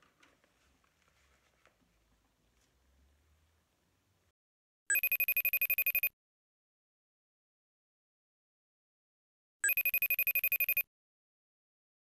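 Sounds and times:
telephone ringing: 0:04.9 - 0:06.1, 0:09.6 - 0:10.9.

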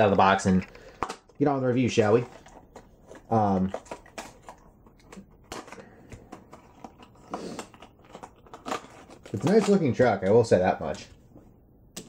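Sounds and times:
cardboard packaging clicks and rustles: 0:00.4 - 0:10.1.

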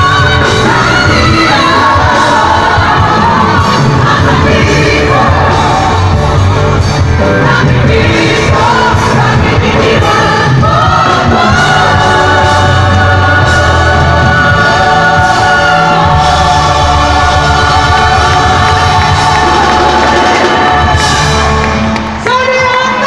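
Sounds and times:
women singing together: 0:00.0 - 0:06.3, 0:07.2 - 0:21.5
live pop band: 0:00.0 - 0:23.0.

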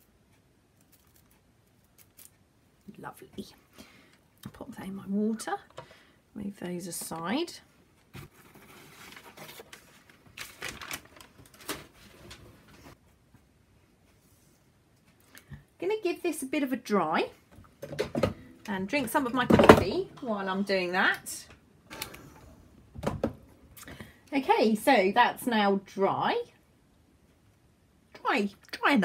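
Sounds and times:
cardboard and paper rustling: 0:08.1 - 0:13.0.

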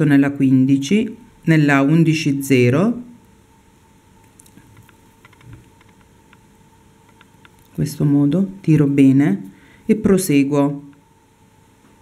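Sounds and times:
clicks and rustles of beadwork: 0:04.2 - 0:06.4.

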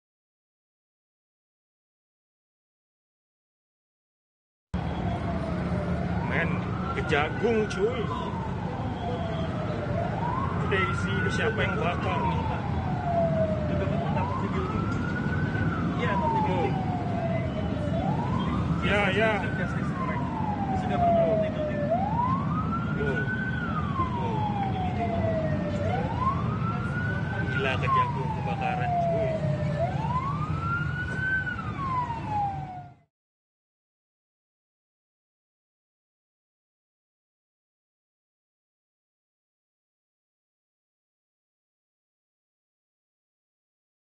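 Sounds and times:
low rumble of traffic: 0:04.8 - 0:33.0
emergency vehicle siren wailing: 0:04.8 - 0:33.1.

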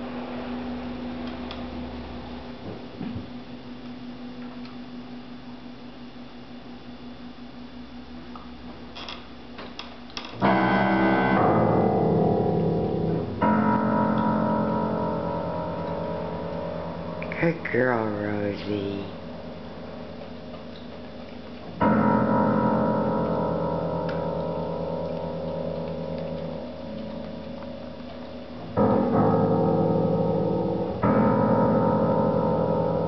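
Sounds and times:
piano note cluster ringing: 0:10.2 - 0:21.0, 0:21.8 - 0:33.0.

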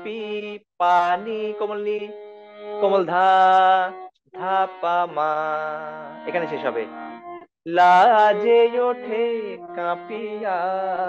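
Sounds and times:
harmonium reed tone: 0:00.0 - 0:11.0.

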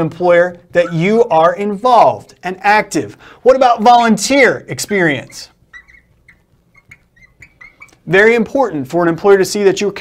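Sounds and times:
marker squeaking on glass: 0:00.4 - 0:01.6, 0:03.8 - 0:08.4.

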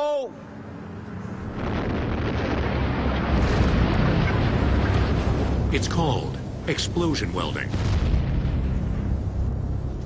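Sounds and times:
underground explosion rumble: 0:01.5 - 0:10.0.

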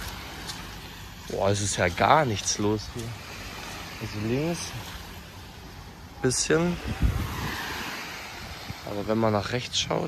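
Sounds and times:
waves washing onto beach: 0:00.0 - 0:10.0
wind buffeting microphone: 0:00.7 - 0:10.0.

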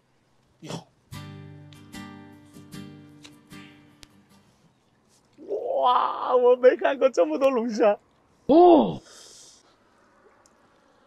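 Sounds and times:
man exclaiming in amazement: 0:05.4 - 0:07.2, 0:08.5 - 0:09.0.

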